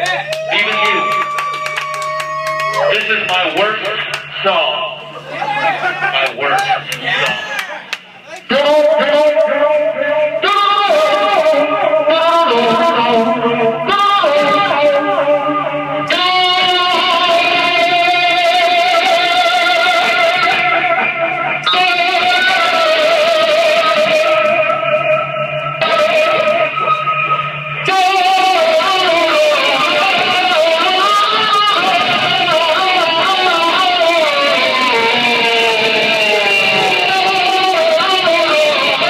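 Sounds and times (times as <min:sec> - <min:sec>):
distorted noise music drone: 0:00.0 - 0:39.0
low pulsing tone: 0:08.6 - 0:39.0.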